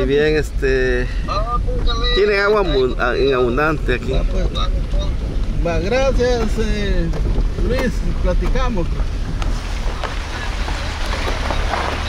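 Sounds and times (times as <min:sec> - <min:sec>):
car engine humming: 0:00.0 - 0:12.0
water splashing under tyres: 0:00.6 - 0:12.0
wind on microphone: 0:02.8 - 0:12.0.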